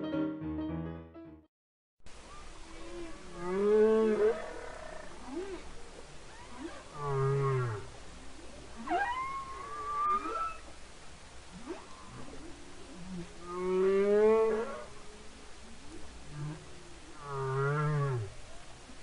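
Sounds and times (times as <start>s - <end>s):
whale moaning calls: 2.6s - 5.7s, 6.3s - 10.7s, 11.5s - 18.4s.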